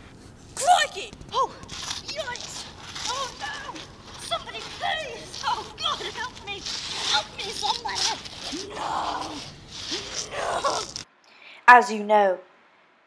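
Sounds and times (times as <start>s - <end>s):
woman yelling: 0.6s - 10.9s.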